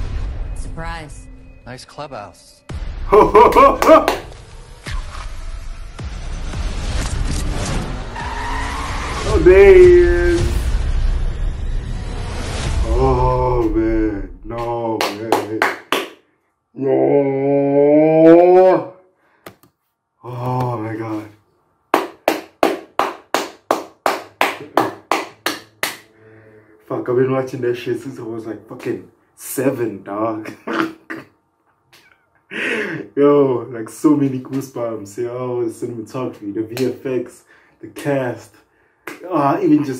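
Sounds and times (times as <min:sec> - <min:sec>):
hands clapping: 0:03.5 - 0:04.4, 0:14.6 - 0:16.2, 0:22.0 - 0:26.1, 0:36.7 - 0:37.0, 0:39.0 - 0:39.3
tires squealing: 0:08.0 - 0:09.8
faint music score: 0:24.5 - 0:30.6.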